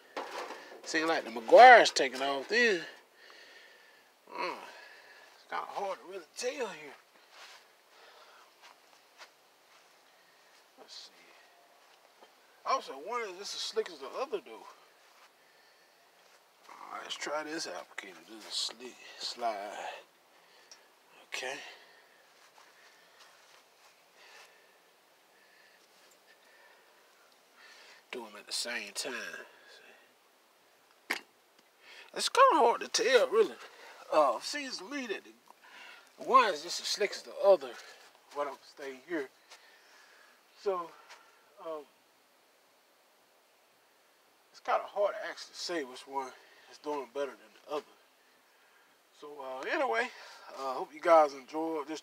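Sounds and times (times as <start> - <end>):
faint background hiss: 0.0 - 52.0.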